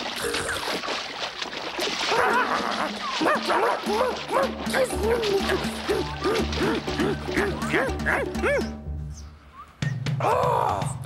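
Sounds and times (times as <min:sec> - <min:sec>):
children's background music: 0:03.3 - 0:09.5.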